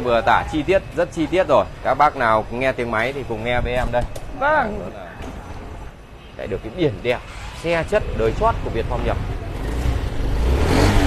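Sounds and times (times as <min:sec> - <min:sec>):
scooter engine revving: 0:07.3 - 0:11.0.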